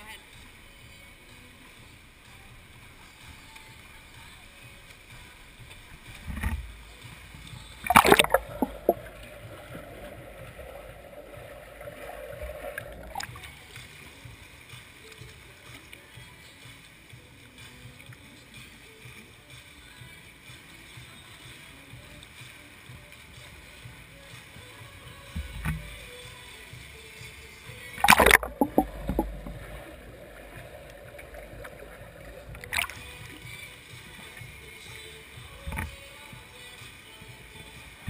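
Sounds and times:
swimmers splashing in echoing pool: 1.2s - 16.1s, 28.0s - 36.0s
muffled underwater sound: 7.8s - 13.5s, 28.0s - 33.4s
loud splash: 7.9s - 13.4s, 28.0s - 33.4s.

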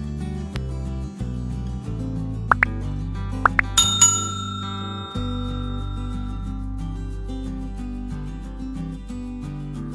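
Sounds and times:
background music: 0.0s - 9.9s
rising pop sound effects: 2.5s - 2.8s, 3.4s - 3.9s
bright bell ring: 3.6s - 6.7s.

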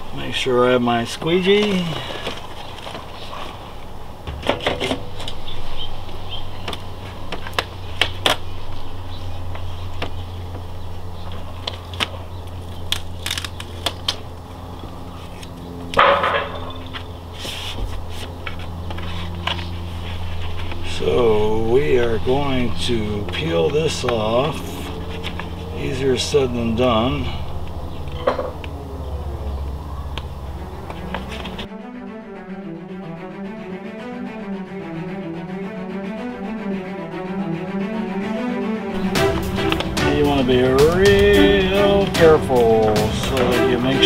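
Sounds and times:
steady low hum: 0.0s - 44.0s
vinyl decal crinkling and peeling: 6.5s - 15.8s, 16.9s - 21.4s.

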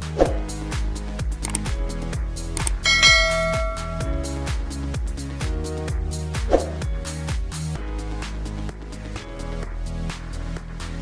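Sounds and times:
electronic music with steady beat: 1.7s - 4.4s
bell-like chime: 2.8s - 4.5s.

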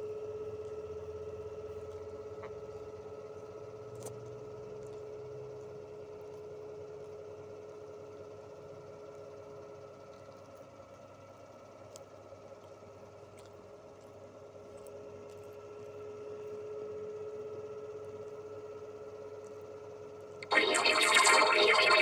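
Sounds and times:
faint steady hum: 20.4s - 22.0s.

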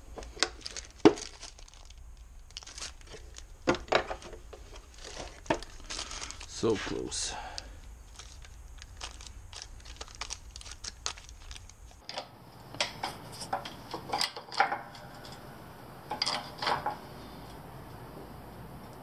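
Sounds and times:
metal parts clicking in plastic bag: 0.2s - 6.6s, 8.1s - 12.1s
metal-on-metal clinks and knocks: 12.0s - 15.5s, 16.1s - 17.1s.

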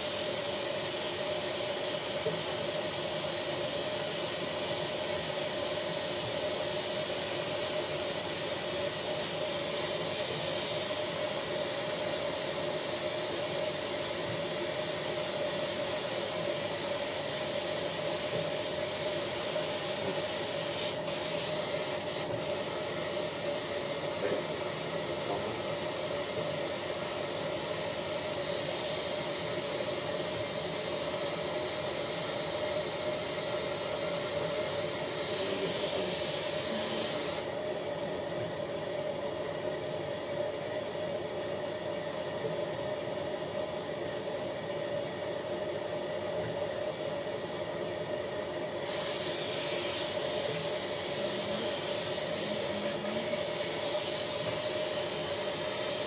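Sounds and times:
dental suction hiss and whine: 0.0s - 56.0s.

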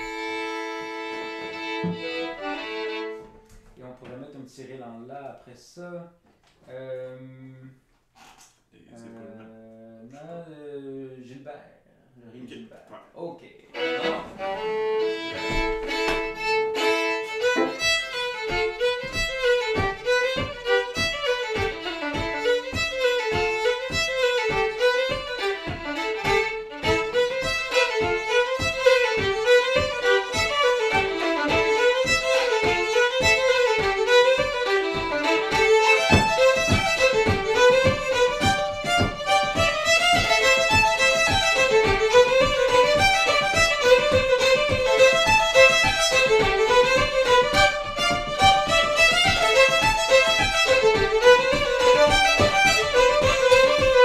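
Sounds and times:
fiddles playing a reel: 0.0s - 3.4s, 13.8s - 54.0s
steady low beat: 13.8s - 54.0s.

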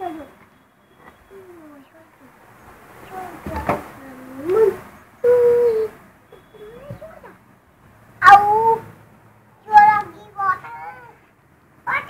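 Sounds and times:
child calling out: 3.1s - 7.4s, 8.2s - 8.9s, 9.7s - 11.2s.

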